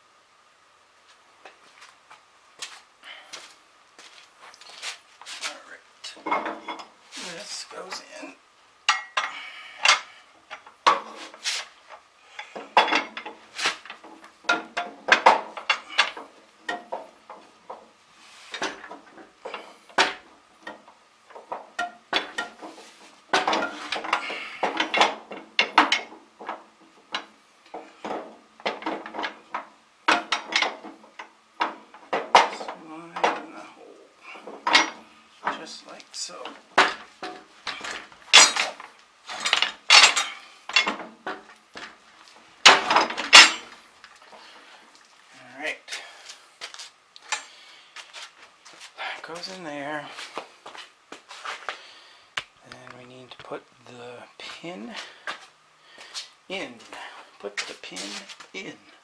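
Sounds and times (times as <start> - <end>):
steel parts clanking: 8.9 - 11.1, 34.4 - 35.6, 36.4 - 41.1, 42.6 - 43.8.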